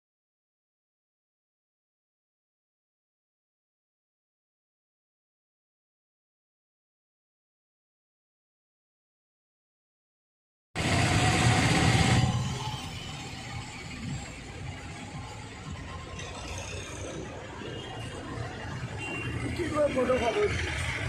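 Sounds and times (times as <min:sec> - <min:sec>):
street traffic: 0:10.8 - 0:21.0.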